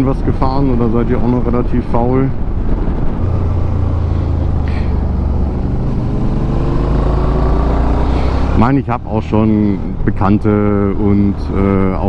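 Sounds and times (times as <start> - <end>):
wind and road noise: 0.0 - 12.0
motorbike engine accelerating: 2.8 - 9.0.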